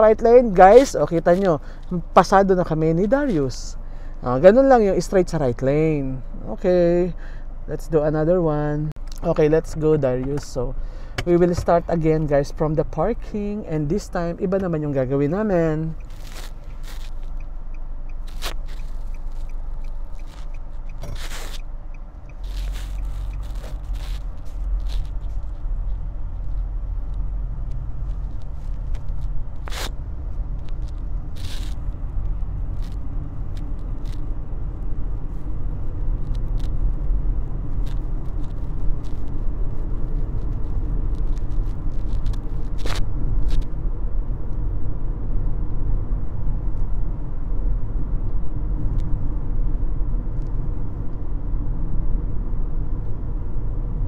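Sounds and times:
car engine and road rumble: 0.0 - 54.0.

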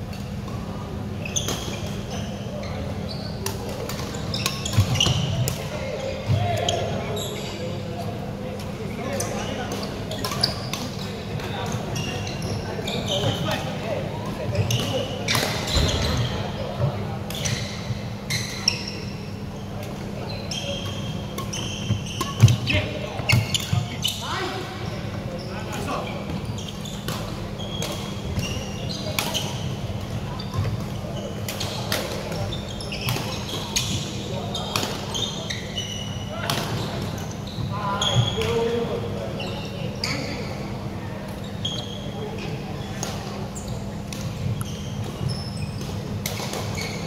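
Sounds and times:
murmur of many voices: 0.0 - 47.0
shoes squeaking on wooden floor: 19.6 - 31.7, 43.6 - 45.8, 46.6 - 47.0.

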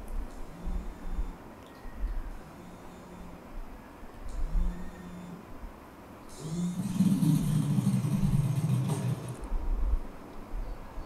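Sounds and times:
motorcycle engine running: 6.4 - 9.5.

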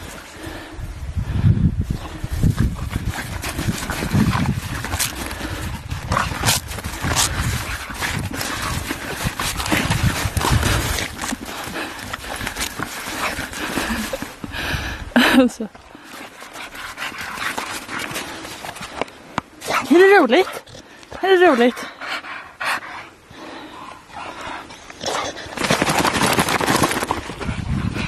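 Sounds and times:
dog crunching and scuffing in snow: 2.4 - 14.3.

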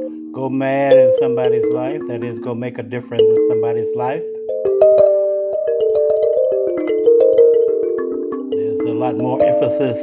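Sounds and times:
bell-like mallet percussion music: 0.0 - 10.0.

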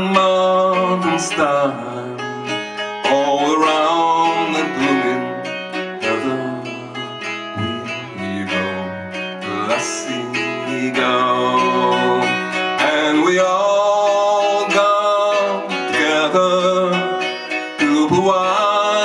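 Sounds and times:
acoustic guitar strumming: 0.0 - 19.0
man singing: 0.0 - 19.0.

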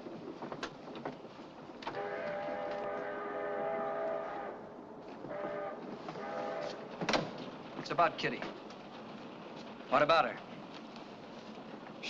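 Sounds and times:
train whistle blasts: 1.9 - 4.6, 5.3 - 6.8.

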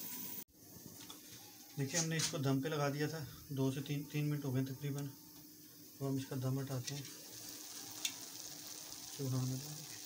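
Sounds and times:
food sizzling in a pan: 0.0 - 2.9, 4.6 - 10.0.

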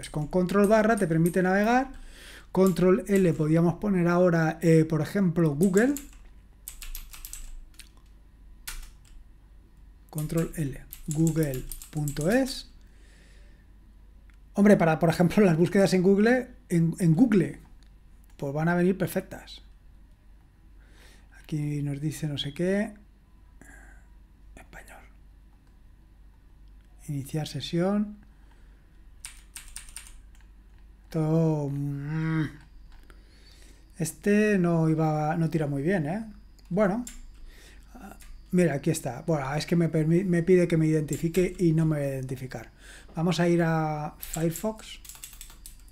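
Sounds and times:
typing on computer keyboard: 0.0 - 3.5, 5.6 - 8.0, 8.7 - 9.2, 10.2 - 12.6, 29.2 - 30.5, 36.6 - 37.5, 41.0 - 41.6, 44.2 - 45.9
keyboard key tapping: 5.6 - 7.9, 8.7 - 9.2, 29.2 - 30.5, 44.2 - 45.9.

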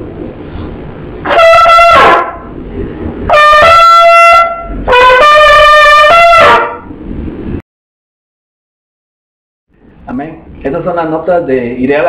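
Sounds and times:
trumpet playing high notes: 1.2 - 2.5, 3.3 - 6.9.

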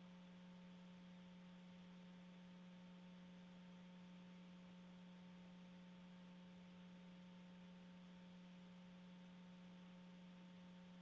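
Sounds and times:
faint electrical hum and hiss: 0.0 - 11.0.

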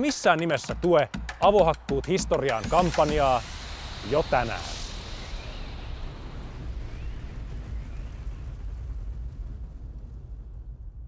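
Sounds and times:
low rumbling noise: 2.6 - 11.0.

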